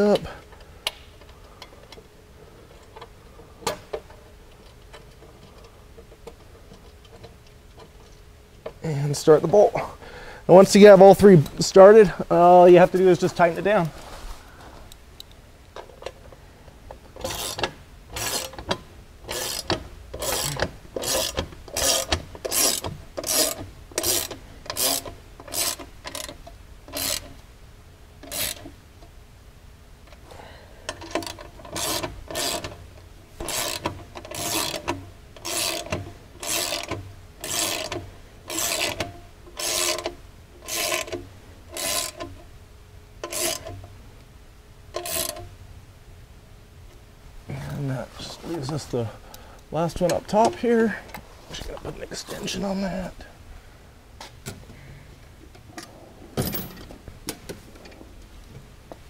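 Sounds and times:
socket ratchet clicking: 17.2s - 27.4s, 28.2s - 28.7s, 30.9s - 32.8s, 33.4s - 42.4s, 43.2s - 43.8s, 44.9s - 45.5s.

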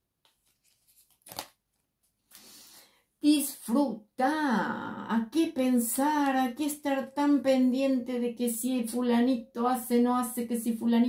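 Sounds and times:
card sliding rustle: 0.3s - 1.6s
card slapping down: 1.2s - 1.6s.

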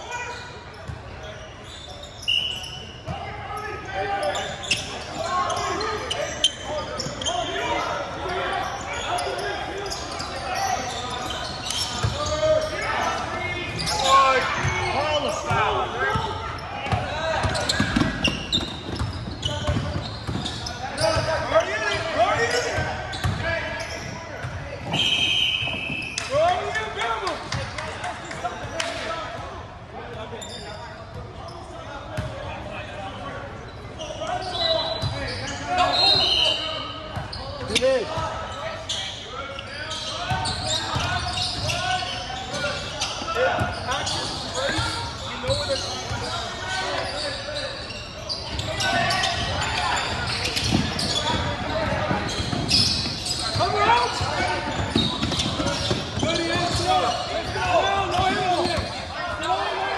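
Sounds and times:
shrill whistle: 1.7s - 2.9s, 24.9s - 26.3s, 35.8s - 36.7s.

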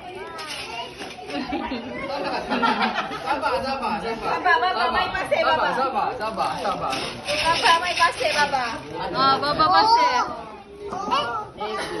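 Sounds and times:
people and children chattering: 0.0s - 12.0s.

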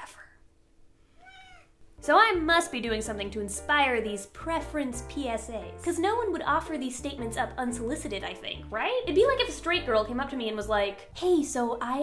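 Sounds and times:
cat meowing: 1.2s - 1.8s.

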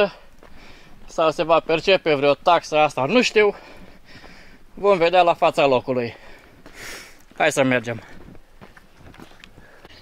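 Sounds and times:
faint footsteps on cobblestones: 0.0s - 10.0s.

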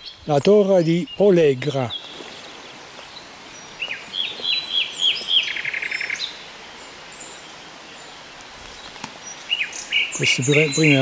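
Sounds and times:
faint hiss: 0.0s - 11.0s
songbird singing: 0.0s - 11.0s.

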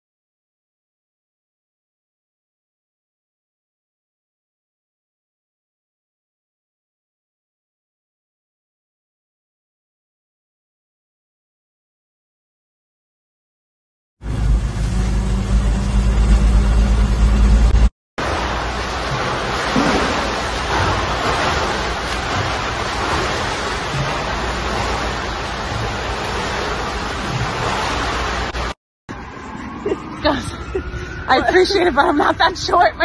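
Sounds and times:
water rushing from swimming: 18.2s - 30.0s.

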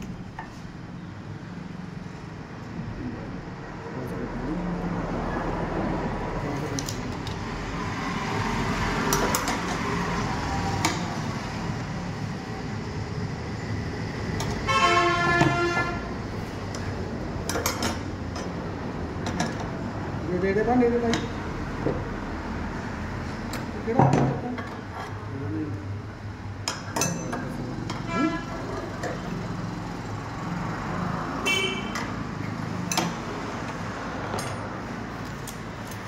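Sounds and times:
traffic noise: 0.0s - 36.0s
vehicle horn: 14.6s - 16.1s, 28.0s - 28.7s, 31.4s - 32.0s.

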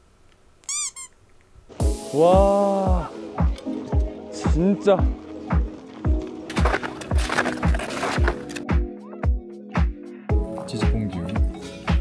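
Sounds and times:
high squeaky cartoon chirps: 0.6s - 1.2s.

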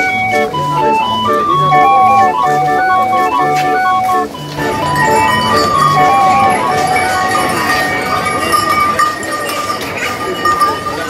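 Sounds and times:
street organ playing jaunty tune: 0.0s - 11.0s.

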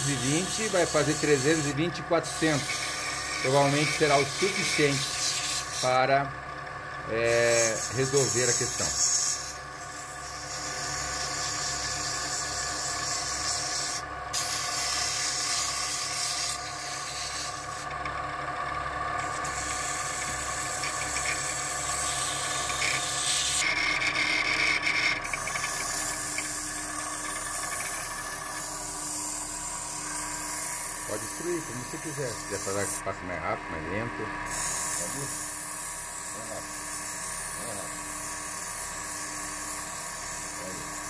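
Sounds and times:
sandpaper hissing on turning wood: 0.0s - 6.2s, 7.2s - 17.9s, 19.2s - 33.2s, 34.5s - 41.0s
lathe motor hum: 0.0s - 41.0s.

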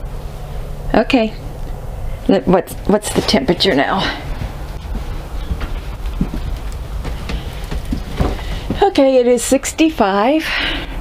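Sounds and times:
soft knocks of footsteps: 3.1s - 9.2s.

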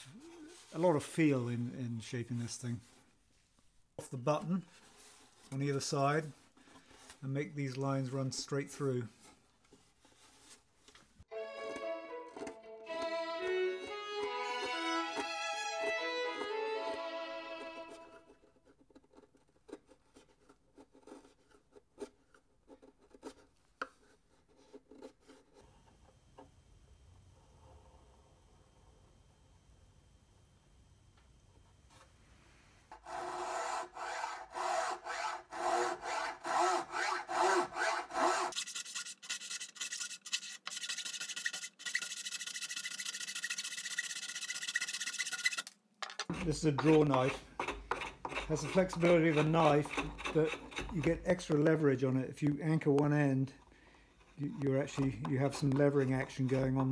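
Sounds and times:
violin music: 11.3s - 18.4s
draw knife scraping wood: 17.6s - 25.6s, 32.9s - 51.5s, 54.3s - 56.9s
knife paring wood: 17.6s - 25.6s, 32.9s - 51.6s.

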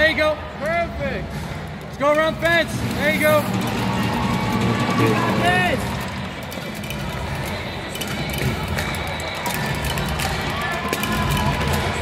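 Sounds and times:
crowd chatter in a large hall: 0.0s - 12.0s
background music: 1.3s - 12.0s.

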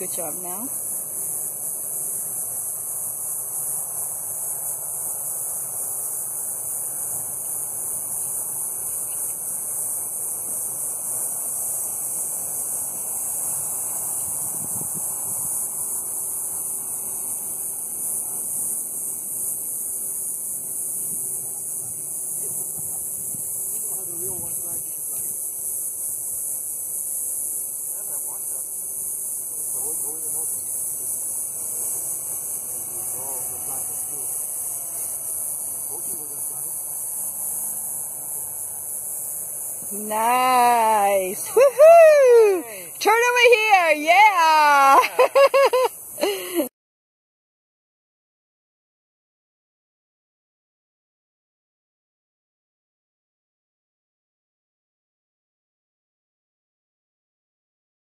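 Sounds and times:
distant model aircraft motor drone: 0.0s - 46.7s
loud high-pitched hiss: 0.0s - 46.7s.

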